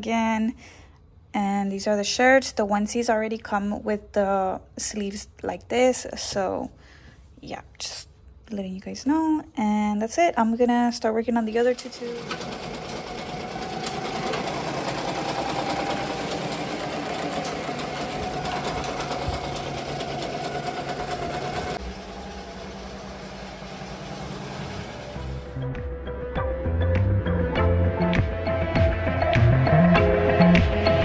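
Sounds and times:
machine hum: 11.7s - 25.7s.

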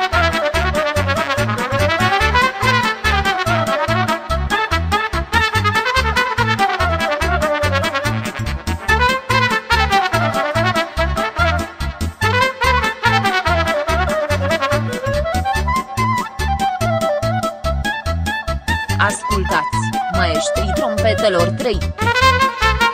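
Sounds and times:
trumpet playing fast melody: 0.0s - 17.6s, 18.9s - 22.9s
folk dance music: 0.0s - 22.9s
bass and drum beat: 0.2s - 22.9s.

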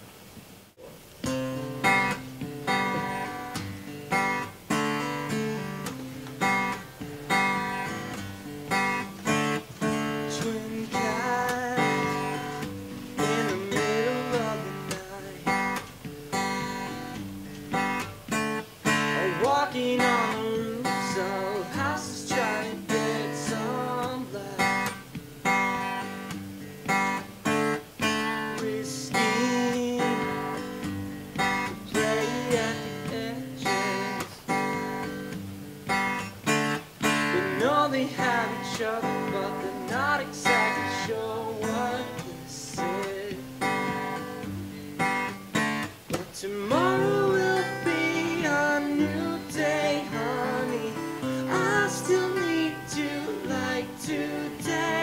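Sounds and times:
acoustic guitar strumming: 0.8s - 55.0s.

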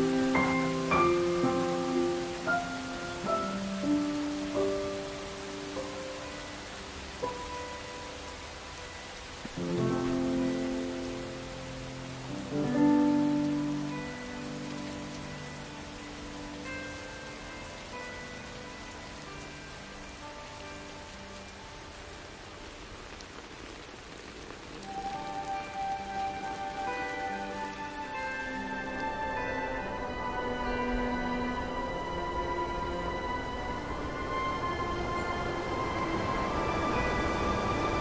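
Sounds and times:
soft sparse music: 0.0s - 38.0s
steady rain falling: 0.0s - 38.0s.

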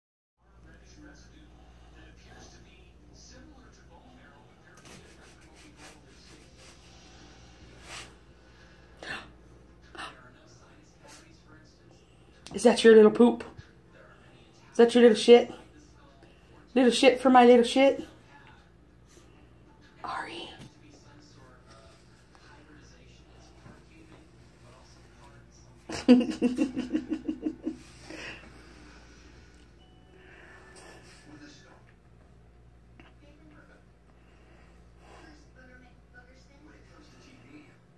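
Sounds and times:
person laughing: 25.9s - 28.4s
person breathing: 27.8s - 31.4s.

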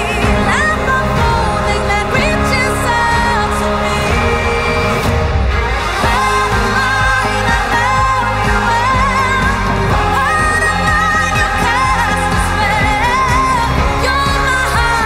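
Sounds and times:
woman singing with vibrato: 0.0s - 15.0s.

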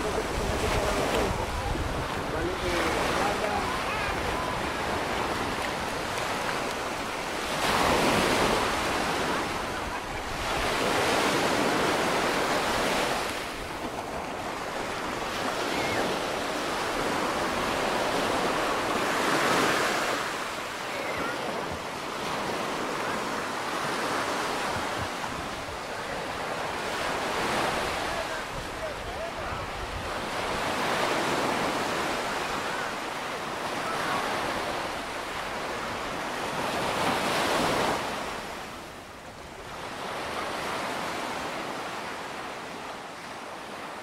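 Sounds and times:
wind rumble on microphone: 0.0s - 6.6s
surf breaking on beach: 0.0s - 44.0s.

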